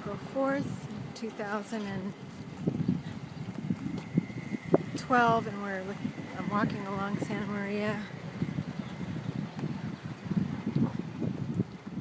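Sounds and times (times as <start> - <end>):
low rumble of car traffic: 0.0 - 12.0
wind buffeting microphone: 0.0 - 12.0.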